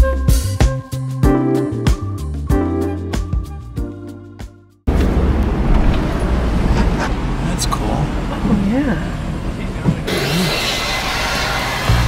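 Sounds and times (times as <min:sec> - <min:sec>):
car engine and road drone: 0:04.9 - 0:12.0.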